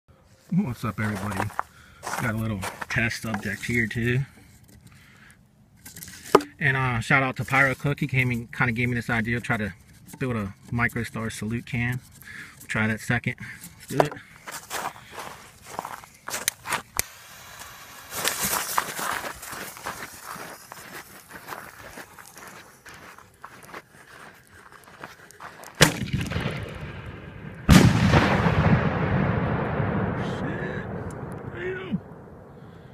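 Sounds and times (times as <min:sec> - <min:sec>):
rustling: 0:00.3 - 0:06.6, 0:13.7 - 0:25.9
footsteps: 0:00.4 - 0:04.9, 0:13.6 - 0:26.8
firework bang with echo: 0:25.8 - 0:32.2.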